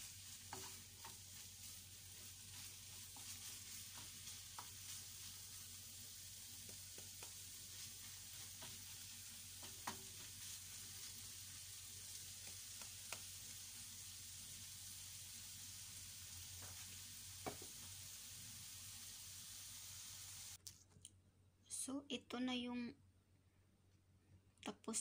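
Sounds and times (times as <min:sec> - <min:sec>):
food sizzling in frying pan: 0:00.0 - 0:20.6.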